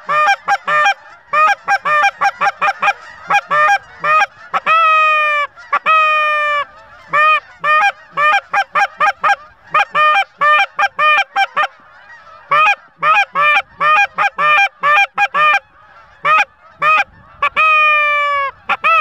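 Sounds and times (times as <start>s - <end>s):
geese honking and clucking: 0.0s - 19.0s.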